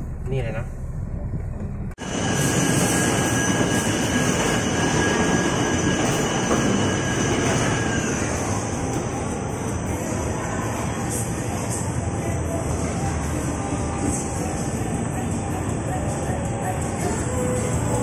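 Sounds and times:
faint high whines: 0:02.0 - 0:15.6
loud steady rushing noise: 0:02.0 - 0:18.0.

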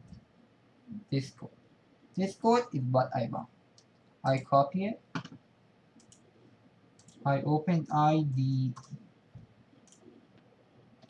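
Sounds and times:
faint computer mouse clicks: 0:06.0 - 0:06.2, 0:07.0 - 0:07.2, 0:09.8 - 0:10.5.

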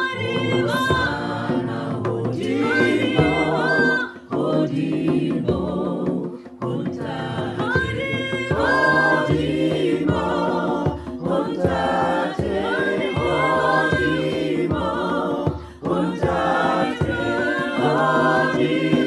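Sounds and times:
choir singing gospel in harmony: 0:00.0 - 0:19.0
hand drum beating: 0:00.0 - 0:19.0.

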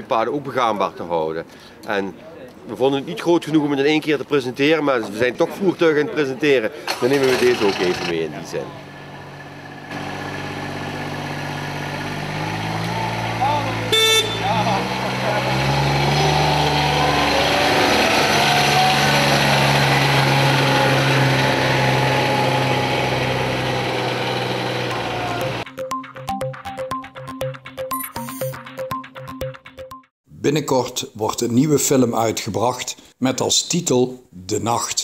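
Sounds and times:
utility vehicle engine driving: 0:06.9 - 0:25.7
horn toot: 0:13.7 - 0:15.6.

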